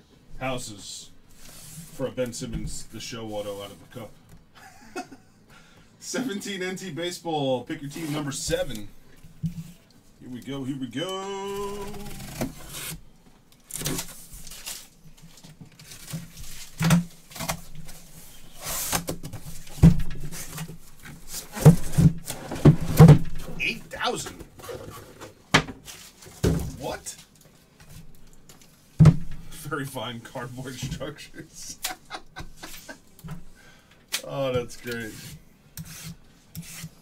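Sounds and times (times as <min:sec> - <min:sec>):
cardboard scraping and tearing: 0:11.5 - 0:13.0
boxes being handled: 0:13.6 - 0:29.5.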